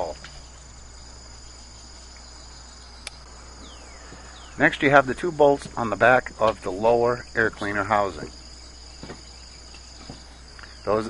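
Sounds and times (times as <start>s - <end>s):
crickets chirring: 0.0s - 11.0s
low constant hum: 0.0s - 11.0s.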